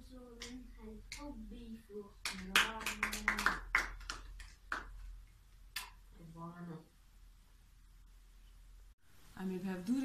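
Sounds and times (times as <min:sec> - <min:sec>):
people clapping: 0:02.2 - 0:05.0.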